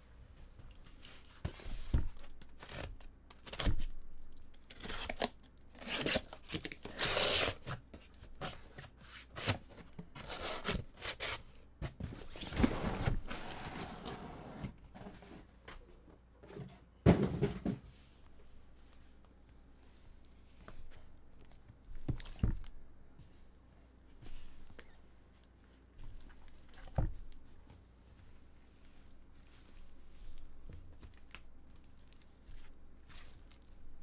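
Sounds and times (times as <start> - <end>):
tape ripping: 4.7 - 7.6
cardboard flaps scraping: 8.4 - 15.4
boxes sliding against cardboard: 12.0 - 15.5.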